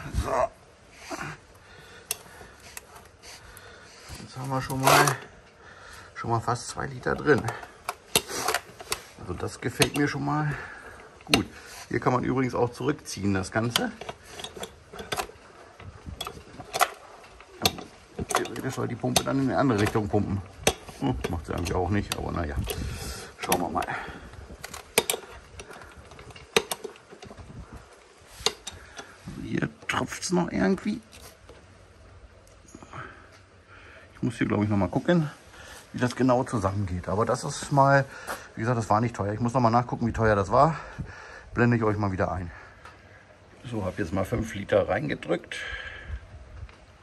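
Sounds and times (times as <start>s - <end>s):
oil pump can clicking: 6.9s - 11.7s, 13.1s - 27.4s, 28.0s - 29.2s
plastic pump clicks and knocks: 17.6s - 23.9s, 24.6s - 27.4s.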